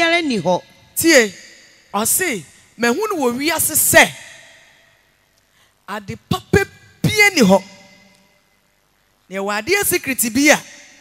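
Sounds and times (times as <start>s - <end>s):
person speaking: 0.0s - 4.6s, 5.8s - 8.1s, 9.3s - 11.0s.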